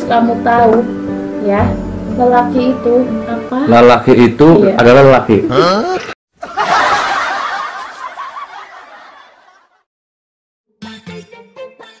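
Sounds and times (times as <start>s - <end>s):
group laughter: 5.8s - 9.9s.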